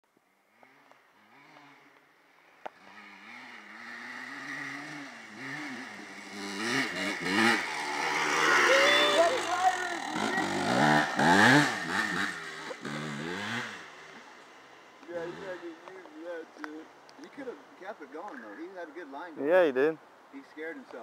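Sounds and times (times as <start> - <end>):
dirt bike engine revving: 0.5 - 15.8.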